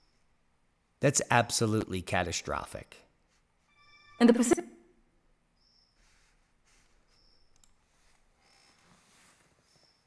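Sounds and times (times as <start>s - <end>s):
faint short high tone: 3.7s - 4.6s
faint clicks: 7.5s - 7.8s.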